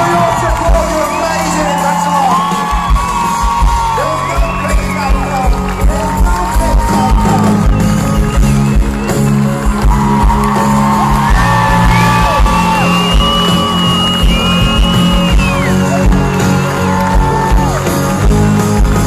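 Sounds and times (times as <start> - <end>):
live pop band playing slow song: 0.0 - 19.0.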